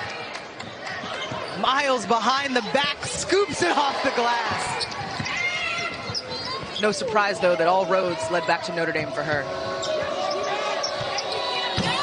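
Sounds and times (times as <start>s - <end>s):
murmuring crowd: 0.0s - 12.0s
sneaker squeaks: 4.5s - 7.1s, 9.7s - 12.0s.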